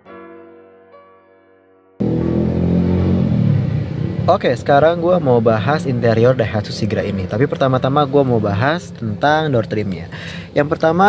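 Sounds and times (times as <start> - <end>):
vehicle engine rumbling: 2.0 - 11.0.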